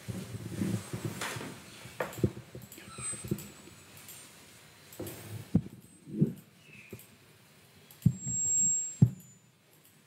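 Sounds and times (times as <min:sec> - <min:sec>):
thin high whine: 0:08.0 - 0:09.6.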